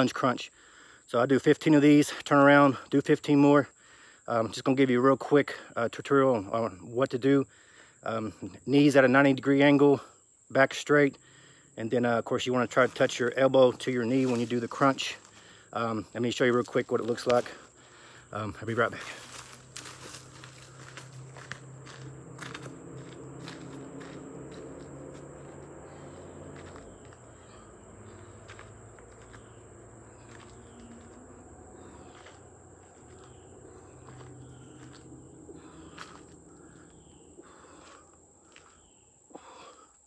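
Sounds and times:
footsteps on dirt trail: 12.5 - 39.0
high insect buzz: 17.2 - 40.0
low hum: 19.2 - 38.5
bird chirping: 23.0 - 39.8.

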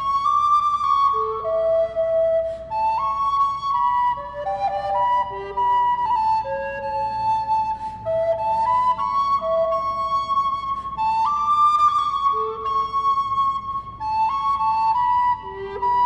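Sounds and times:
recorder playing slow melody: 0.0 - 16.0.

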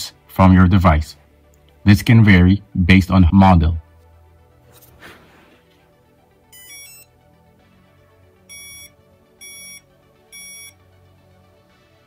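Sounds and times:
electronic beeps: 6.5 - 7.1, 8.5 - 10.8.

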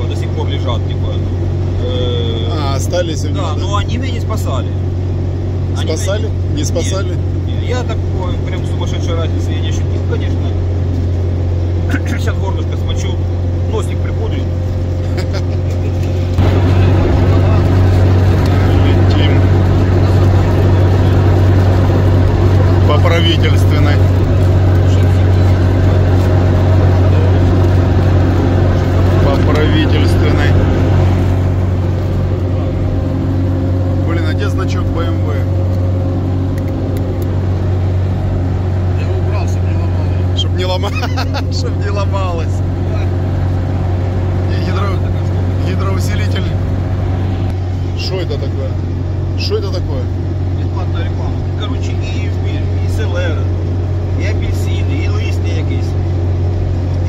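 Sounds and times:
engine and road drone: 0.0 - 57.0.

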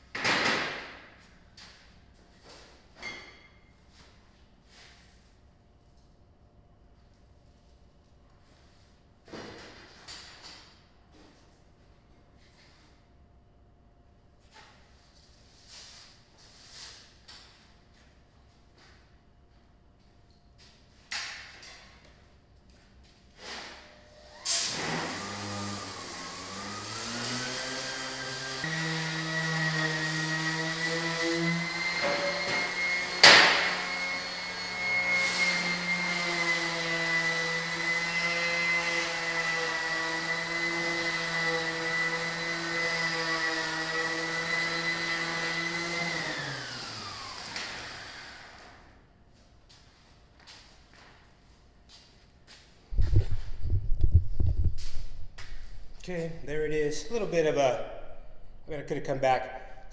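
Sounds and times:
electric sander whining: 25.0 - 48.7.

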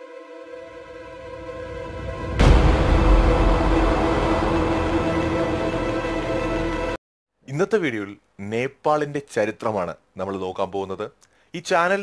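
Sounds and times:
eerie drone music: 0.0 - 7.0
heavy hit: 0.5 - 7.0.

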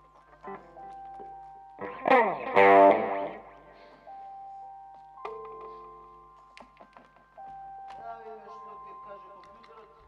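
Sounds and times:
electric guitar with effects: 0.0 - 4.0.

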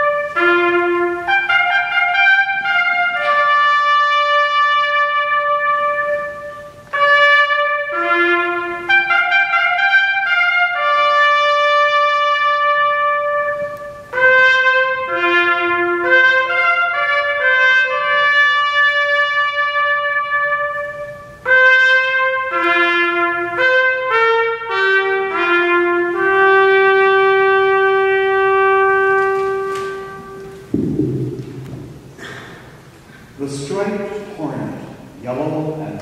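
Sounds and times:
trumpet holding a long note: 0.0 - 32.0
sudden low noise: 30.6 - 33.7.

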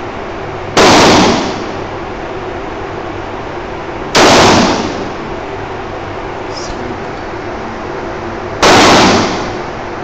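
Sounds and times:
gunshot with echo: 0.7 - 1.8, 4.1 - 5.2, 8.6 - 9.8.

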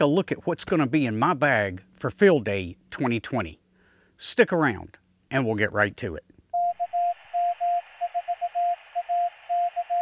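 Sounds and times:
morse code tone: 6.6 - 10.0.

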